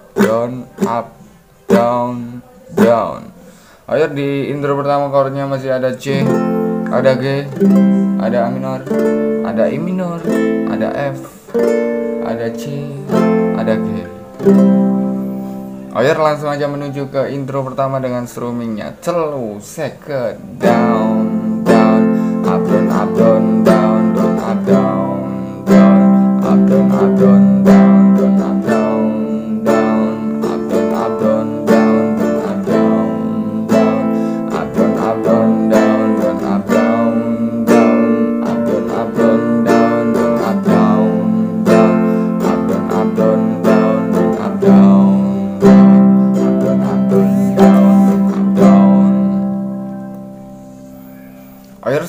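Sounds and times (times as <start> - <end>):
acoustic guitar strumming: 0.0 - 52.0.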